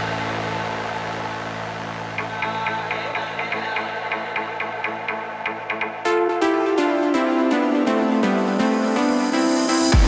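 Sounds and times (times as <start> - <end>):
electronic music synthesizer chord: 0.0 - 10.0.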